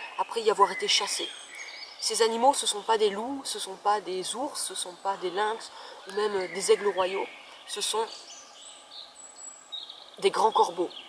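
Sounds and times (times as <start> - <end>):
background hiss: 0.0 - 11.0
distant small birds chirping: 0.0 - 11.0.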